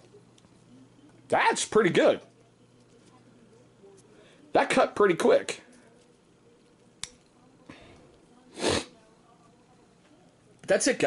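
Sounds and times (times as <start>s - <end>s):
person sniffing: 8.5s - 8.9s.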